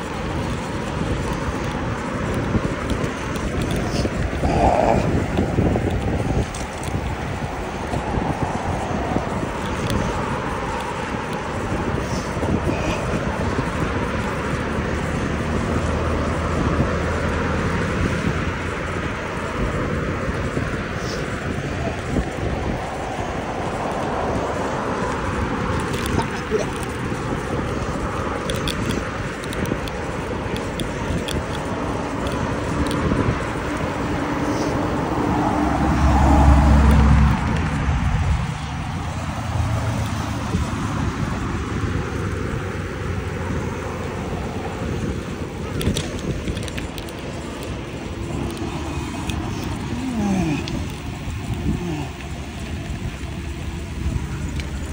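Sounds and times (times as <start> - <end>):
road traffic passing: 0.0 - 54.9
wind rushing over microphone: 0.0 - 54.9
vehicle passing close by: 31.1 - 54.9.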